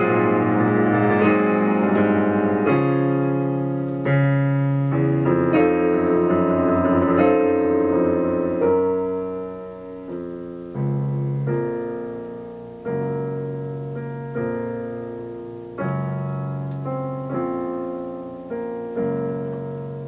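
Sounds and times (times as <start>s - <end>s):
slow piano chords: 0.0s - 20.0s.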